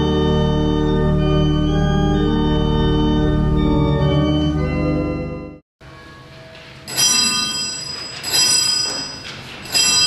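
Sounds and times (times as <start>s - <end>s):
small bell ringing: 6.9s - 10.0s.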